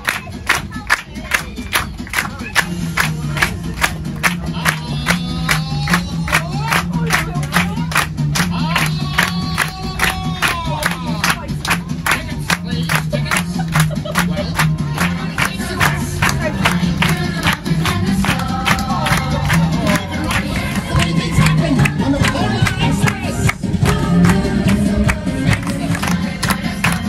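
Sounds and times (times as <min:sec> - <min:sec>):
people clapping in time: 0:00.0 - 0:27.0
upbeat music: 0:00.0 - 0:27.0.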